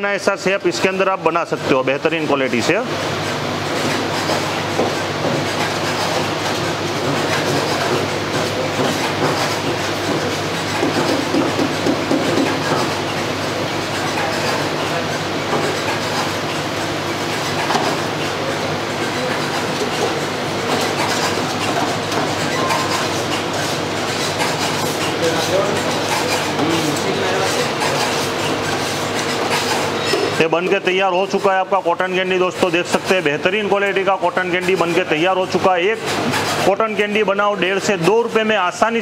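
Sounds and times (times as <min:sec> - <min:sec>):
cotton candy machine humming: 0:00.0 - 0:39.0.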